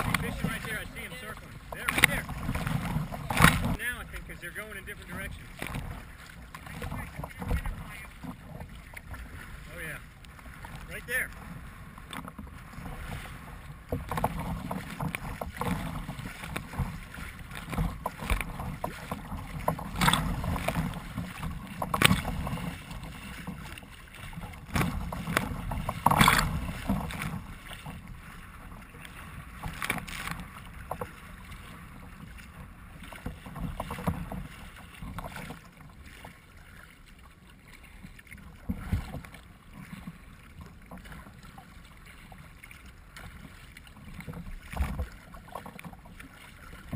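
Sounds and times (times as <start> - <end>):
wind rumble on microphone: 0.0 - 3.8, 5.1 - 9.8, 10.6 - 35.6
water splashing against kayak: 0.0 - 46.9.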